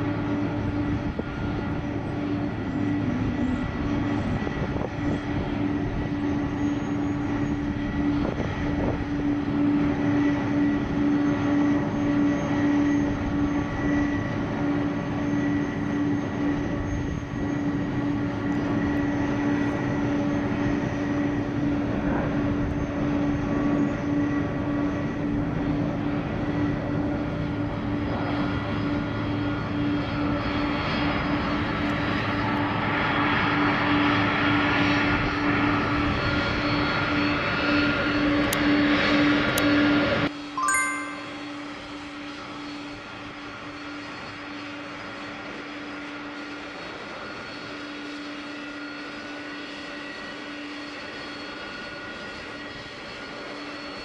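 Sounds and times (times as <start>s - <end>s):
jet engines whining: 0.0s - 20.3s.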